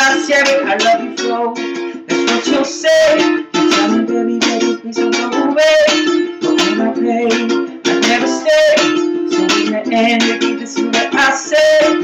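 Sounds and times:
man singing: 0.0 - 12.0
ukulele strumming chords: 0.0 - 12.0.

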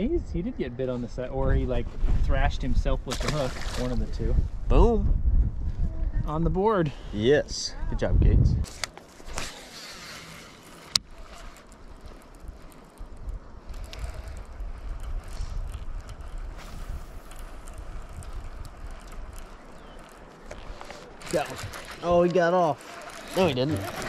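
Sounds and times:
wind noise on microphone: 0.0 - 9.7, 11.0 - 22.3.

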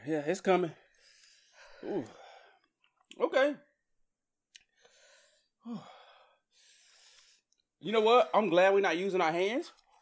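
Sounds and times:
person breathing heavily: 0.9 - 2.7, 4.7 - 7.5.

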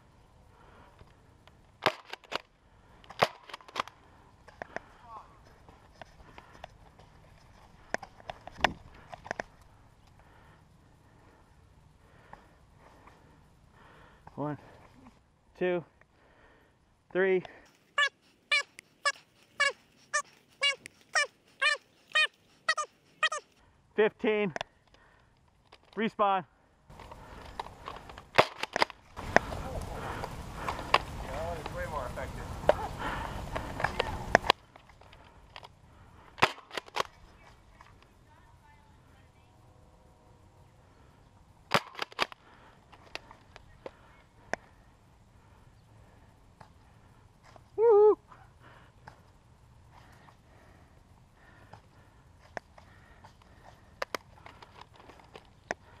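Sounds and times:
small dog yapping: 18.0 - 23.5.

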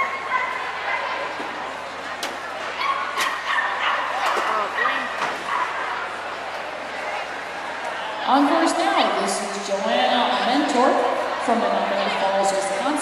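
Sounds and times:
crowd chatter in a large hall: 0.0 - 13.0.

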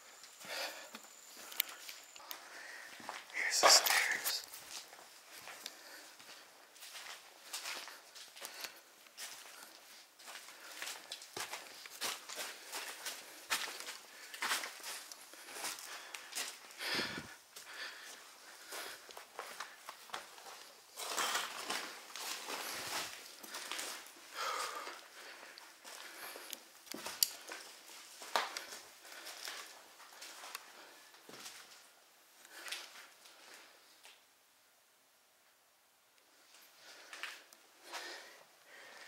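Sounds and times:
footsteps crunching on papers: 1.4 - 31.8.

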